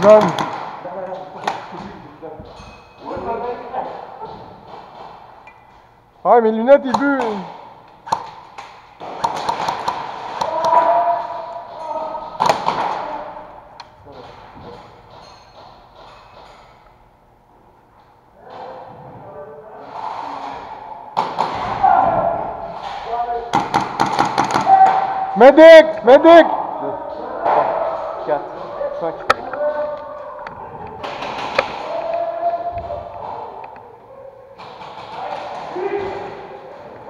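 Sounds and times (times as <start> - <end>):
players calling out: 19.8 - 37.0.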